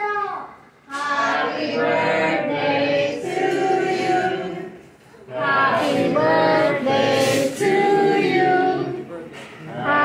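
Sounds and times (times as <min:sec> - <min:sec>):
group singing a birthday song: 0:00.8 - 0:10.0.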